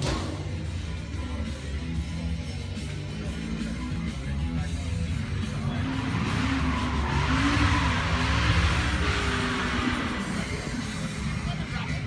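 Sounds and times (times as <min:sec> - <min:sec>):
rock music: 0:00.0 - 0:12.0
motor vehicle rushing past: 0:05.0 - 0:11.7.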